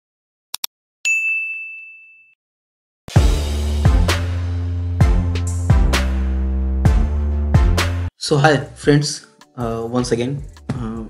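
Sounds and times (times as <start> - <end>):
notification bell ding: 1.1 - 2.4.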